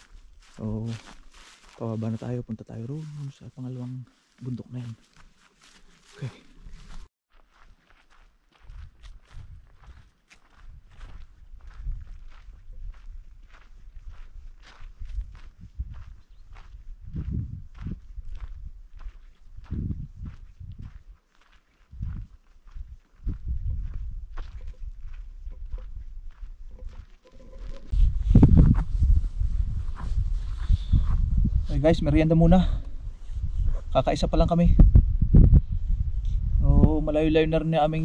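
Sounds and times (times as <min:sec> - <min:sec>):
footsteps crunching through dry grass: 0:00.0 - 0:34.7
low microphone rumble: 0:17.0 - 0:18.8, 0:19.6 - 0:20.9, 0:27.9 - 0:32.3, 0:34.7 - 0:37.2.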